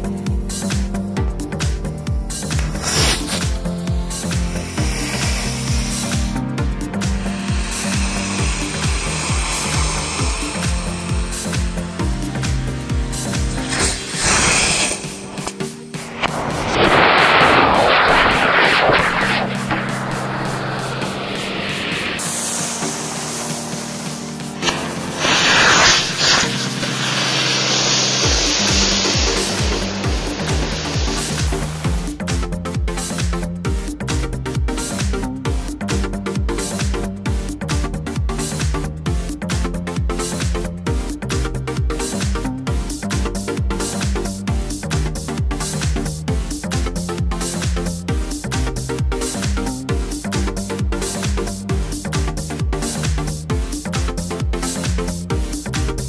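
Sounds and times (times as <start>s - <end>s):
electronic dance music: 1.6s - 33.4s
firework rockets hissing: 2.4s - 32.1s.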